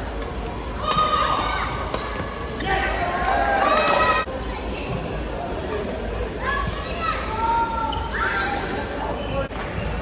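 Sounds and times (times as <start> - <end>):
murmur of spectators: 0.0 - 10.0.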